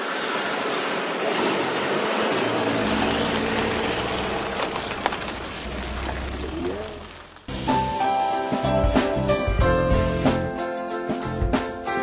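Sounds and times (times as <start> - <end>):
tyre and road noise: 0.0 - 8.0
low engine rumble: 1.3 - 8.0.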